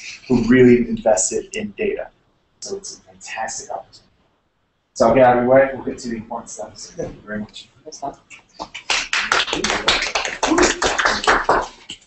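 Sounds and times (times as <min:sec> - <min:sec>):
audience applauding: 0:08.8 - 0:12.0.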